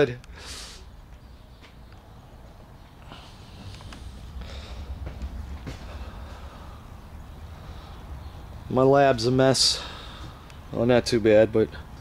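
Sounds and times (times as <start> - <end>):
faint taps and scuffs: 1.1 - 2.0, 5.0 - 6.1.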